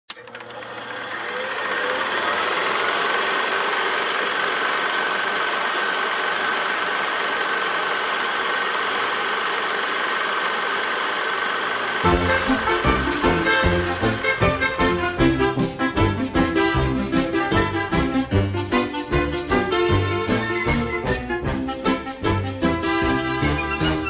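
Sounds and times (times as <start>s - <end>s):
mechanical whirring and rattle: 0.1s - 14.8s.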